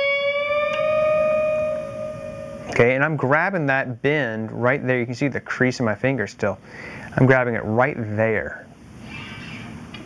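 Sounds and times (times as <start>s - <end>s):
guitar note bent upward: 0.0s - 2.8s.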